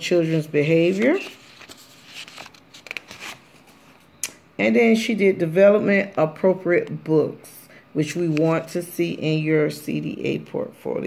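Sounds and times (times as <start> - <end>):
paper page rustling: 0.1 - 4.1.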